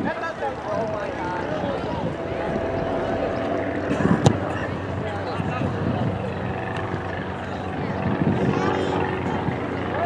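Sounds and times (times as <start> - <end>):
steady low rumble: 0.5 - 8.4.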